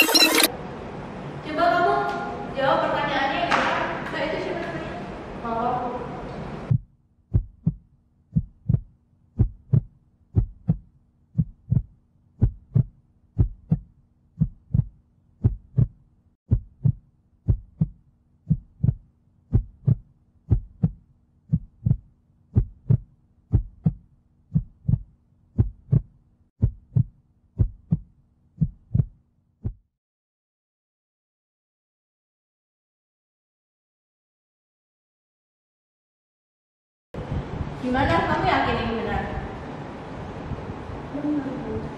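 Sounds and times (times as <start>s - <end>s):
heartbeat thumps: 6.7s - 29.9s, 37.2s - 37.8s
faint hum: 37.2s - 41.9s.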